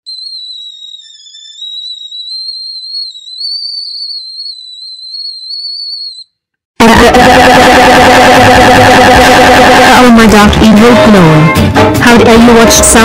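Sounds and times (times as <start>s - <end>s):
high-pitched cartoon whistling tone: 0.1s - 6.3s.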